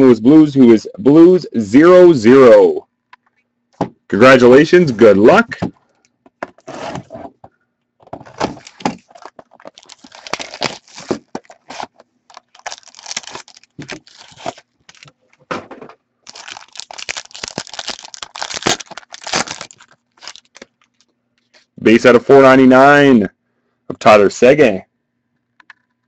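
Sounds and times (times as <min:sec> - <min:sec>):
packaging tearing and crinkling: 0:08.4 - 0:15.1, 0:16.3 - 0:21.1.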